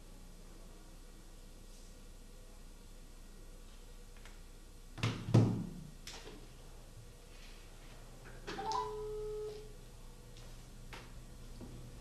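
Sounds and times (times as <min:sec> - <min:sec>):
telephone ringback tone: 0:08.6 - 0:09.7.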